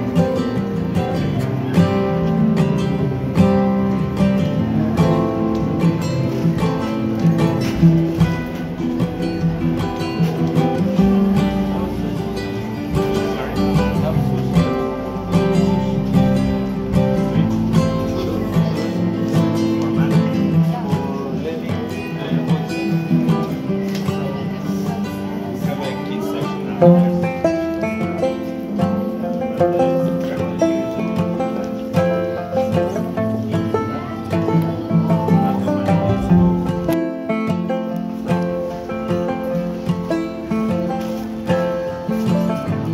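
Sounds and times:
strummed acoustic guitar: 0.0s - 42.9s.

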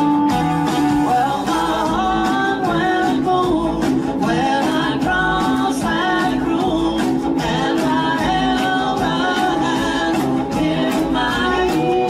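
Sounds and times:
bass guitar: 0.0s - 12.0s
electric guitars: 0.0s - 12.0s
steady drum beat: 0.0s - 12.0s
man singing: 0.9s - 12.0s.

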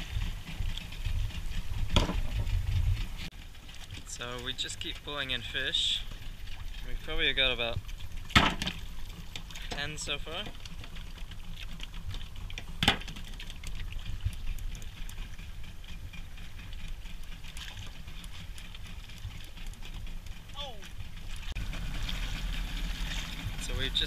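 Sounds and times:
wind and water around boat: 0.0s - 24.0s.

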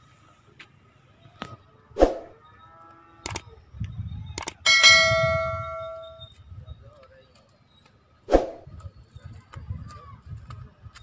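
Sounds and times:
short swoosh: 2.0s - 2.4s, 8.3s - 8.7s
mouse clicks: 4.4s - 4.6s
notification bell ding: 4.7s - 6.2s.

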